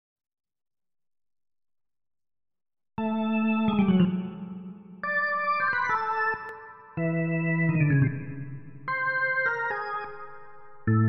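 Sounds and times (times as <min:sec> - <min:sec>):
electronic organ held chords: 0:03.0 - 0:11.0.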